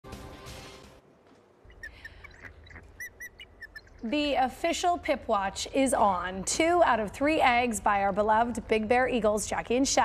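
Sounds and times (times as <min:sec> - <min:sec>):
eagle chirping: 0:01.6 - 0:04.2.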